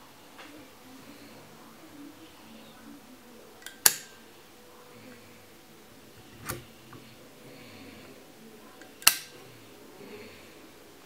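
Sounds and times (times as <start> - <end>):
table lighter mechanism clicking: 3.6 - 4.1, 8.9 - 9.3.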